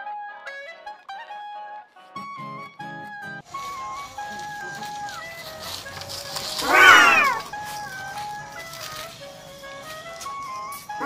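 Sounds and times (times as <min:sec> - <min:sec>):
cat meow: 0:06.6 - 0:07.5.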